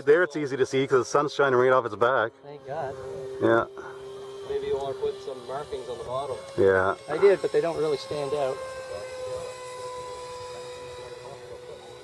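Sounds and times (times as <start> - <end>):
model jet fan whining: 0.0 - 12.0.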